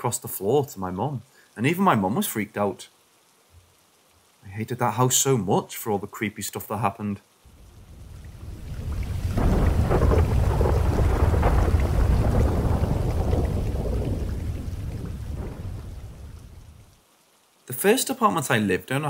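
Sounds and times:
rain: 0.0 - 19.0
thunder rolling: 7.5 - 16.9.

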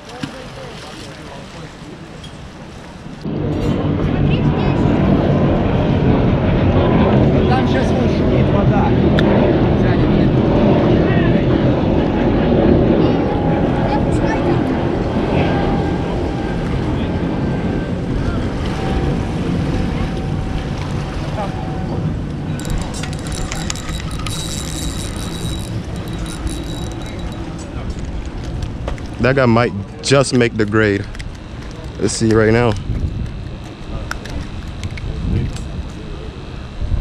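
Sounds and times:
low engine rumble: 0.0 - 37.0
rapid high clicking: 22.5 - 29.3.

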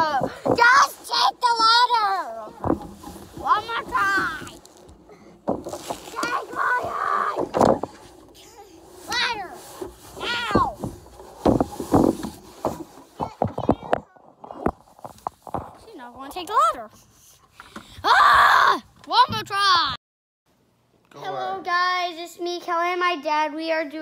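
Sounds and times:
fabric rubbing on microphone: 2.0 - 13.4
children calling and squealing: 5.8 - 10.9.

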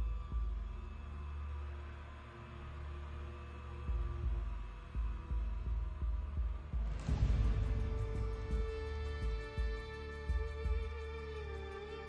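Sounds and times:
low heartbeat-like pulse: 0.0 - 1.3, 3.6 - 11.3.

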